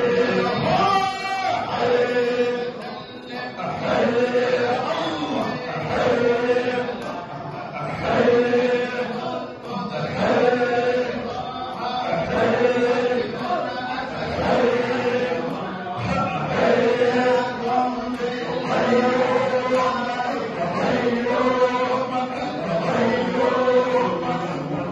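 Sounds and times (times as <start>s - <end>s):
men chanting in unison: 0.0s - 24.9s.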